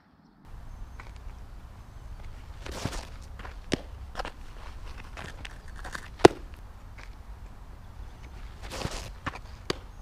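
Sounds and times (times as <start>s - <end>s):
steady low rumble: 0.5s - 10.0s
stride scuffing on dirt: 0.5s - 10.0s
ball smacking into mitt: 2.2s - 7.2s, 8.6s - 10.0s.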